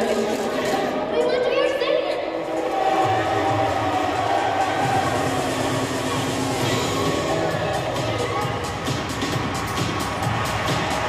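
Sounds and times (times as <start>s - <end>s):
backing track over loudspeakers: 0.0s - 11.0s.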